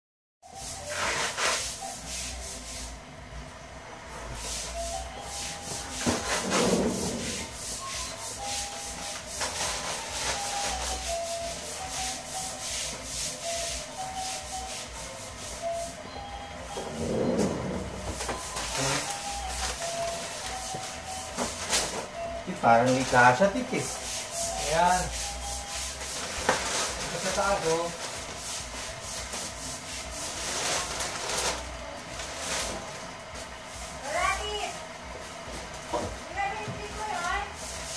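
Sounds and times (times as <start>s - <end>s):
plastic bags rustling and crinkling: 22.8s - 34.6s.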